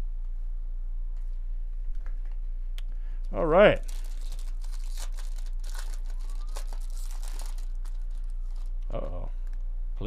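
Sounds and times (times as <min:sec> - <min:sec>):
low electrical hum: 0:00.0 - 0:10.0
foil wrapper crinkling: 0:03.7 - 0:08.8.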